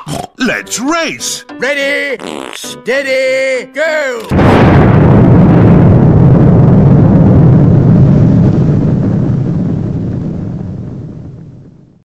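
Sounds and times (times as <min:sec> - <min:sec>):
deep rumbling explosion: 0:04.3 - 0:12.0.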